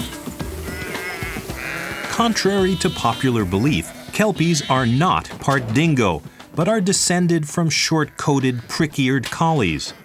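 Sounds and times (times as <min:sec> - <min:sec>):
background music: 0:00.0 - 0:10.0
sheep bleating: 0:00.0 - 0:10.0.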